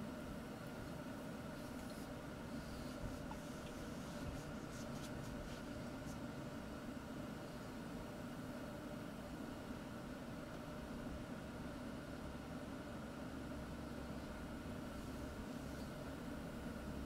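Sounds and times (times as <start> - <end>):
faint low hum: 0.0 - 17.0
steady background hiss: 0.0 - 17.0.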